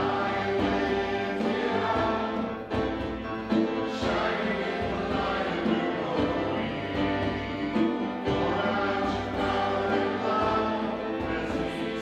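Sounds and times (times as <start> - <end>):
grand piano: 0.0 - 12.0
voices singing worship song: 0.0 - 12.0.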